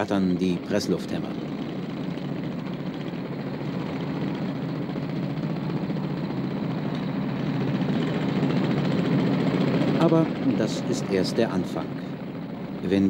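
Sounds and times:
jackhammers rattling: 0:00.0 - 0:13.0.

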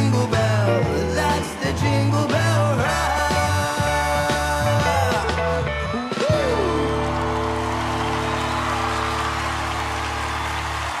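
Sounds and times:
audience applause and cheering: 0:06.1 - 0:11.0.

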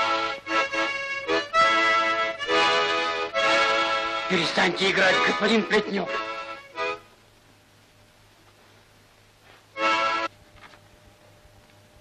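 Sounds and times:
harmonica chord: 0:00.0 - 0:07.2, 0:09.7 - 0:10.3.

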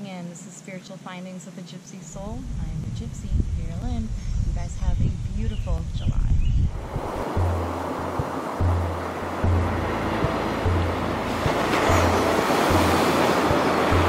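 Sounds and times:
ocean surf washing in: 0:06.7 - 0:14.0
music with pulsing bass: 0:06.8 - 0:14.0.

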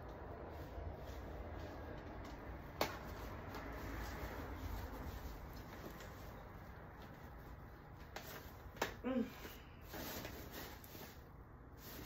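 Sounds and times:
fabric and frame handling noise: 0:00.0 - 0:12.0
short hummed vocal sound: 0:09.0 - 0:09.5.

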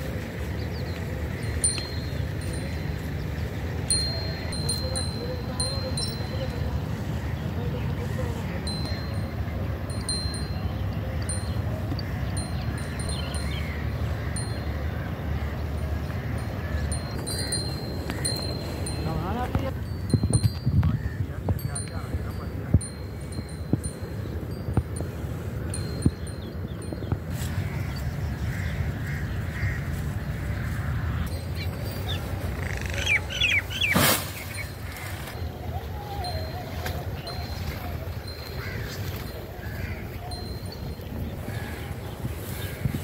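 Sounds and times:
neck bells tinkling: 0:00.0 - 0:28.6, 0:31.2 - 0:43.0
steady low rumble: 0:00.0 - 0:32.6
bird squawking: 0:27.6 - 0:35.4.

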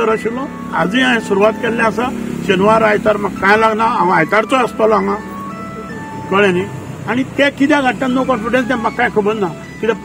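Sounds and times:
man speaking: 0:00.0 - 0:05.3, 0:06.2 - 0:10.0
simple tune of held notes: 0:04.1 - 0:06.8.

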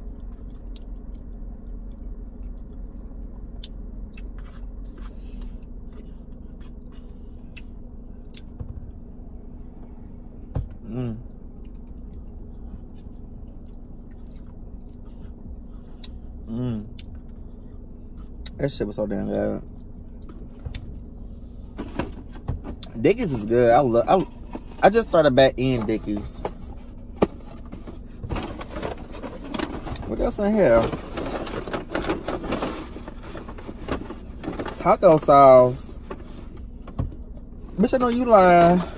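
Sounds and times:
steady low rumble: 0:00.0 - 0:38.9
person chewing food: 0:11.6 - 0:16.2
paper bag rustling: 0:27.7 - 0:36.4.

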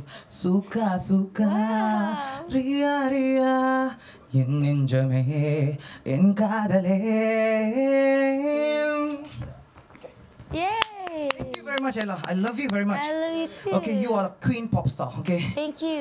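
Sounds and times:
man singing with vibrato: 0:00.0 - 0:09.4.

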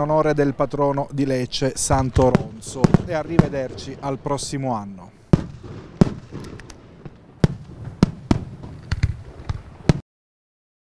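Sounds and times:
fireworks bangs: 0:01.7 - 0:10.0.

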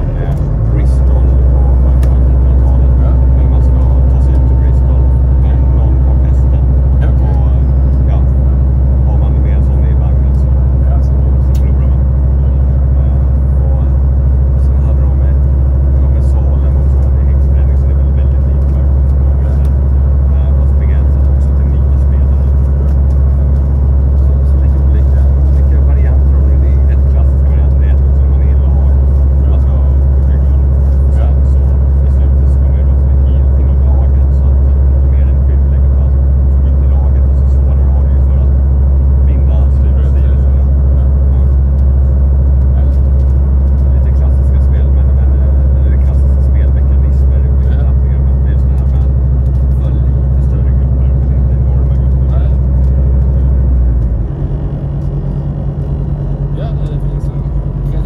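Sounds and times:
bus engine drone: 0:00.0 - 0:58.0.

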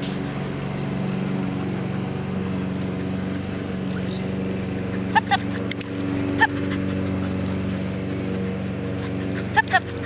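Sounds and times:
motor running drone: 0:00.0 - 0:10.0.

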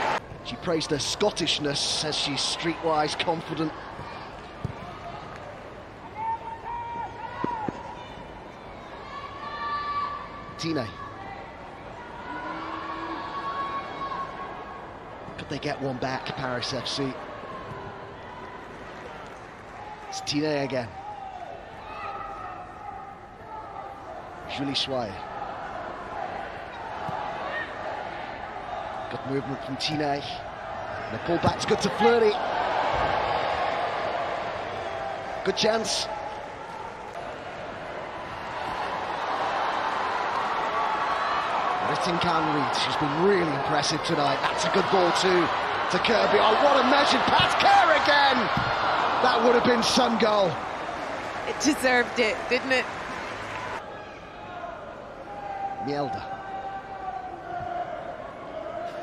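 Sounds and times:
stadium crowd roaring: 0:00.0 - 0:59.0.

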